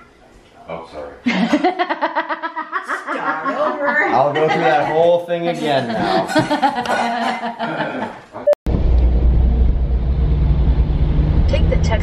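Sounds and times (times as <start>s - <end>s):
car rumble from inside cabin: 8.9s - 12.0s.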